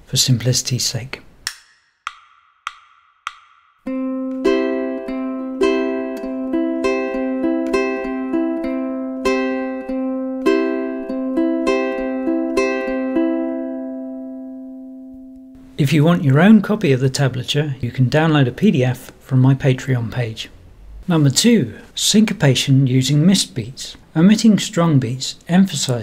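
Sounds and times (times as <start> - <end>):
ukulele plucked: 3.9 - 15.6.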